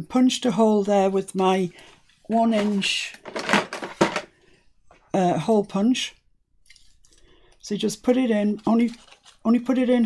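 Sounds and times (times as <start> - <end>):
rummaging in plastic drawer: 2.4 - 4.3, 8.5 - 9.8.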